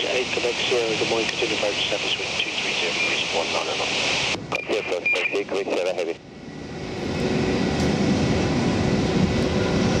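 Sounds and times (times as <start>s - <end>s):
jet engines roaring: 0.0s - 10.0s.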